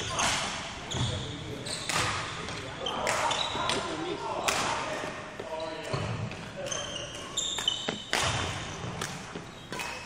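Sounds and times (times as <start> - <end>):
shoes squeaking on wooden floor: 5.4 - 9.8.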